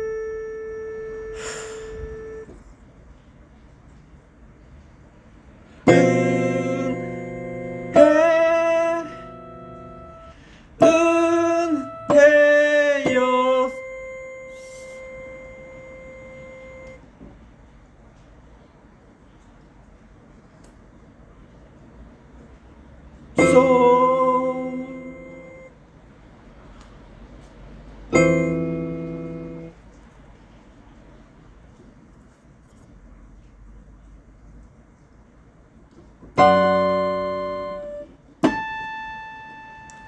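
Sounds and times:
piano note ringing: 0.0s - 2.5s, 5.9s - 17.0s, 23.4s - 25.7s, 28.1s - 29.8s, 36.4s - 40.0s
breathy exhale: 1.3s - 2.0s, 10.3s - 10.8s.

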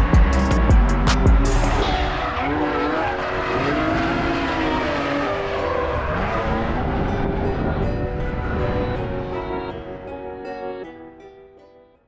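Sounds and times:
racing car engines revving: 0.0s - 9.6s.

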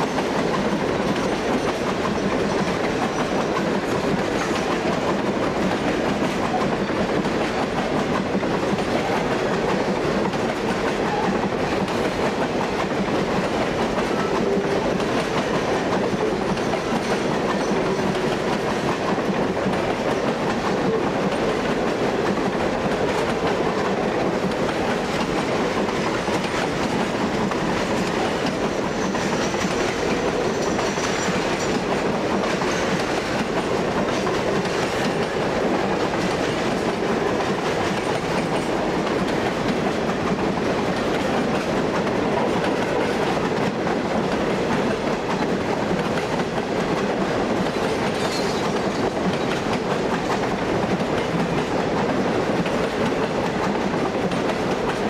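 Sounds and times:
freight train rolling past: 0.0s - 55.0s.

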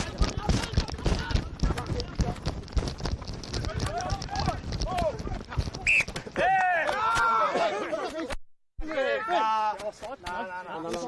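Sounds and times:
running footsteps on turf: 0.0s - 6.6s
players shouting: 3.6s - 10.7s.

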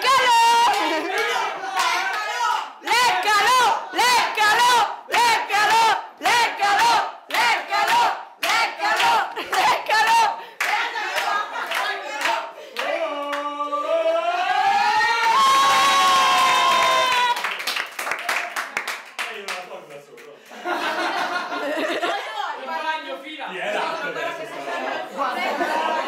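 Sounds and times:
group chanting shouts: 0.0s - 17.4s
crowd cheering: 0.0s - 19.4s, 23.8s - 26.0s.

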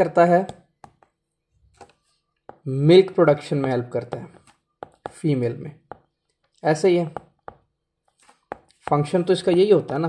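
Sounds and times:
stylus tapping on glass screen: 7.1s - 7.8s.

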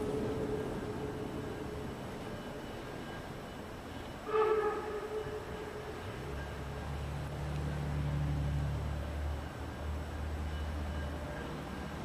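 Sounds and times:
steam locomotive whistle: 4.2s - 6.9s.

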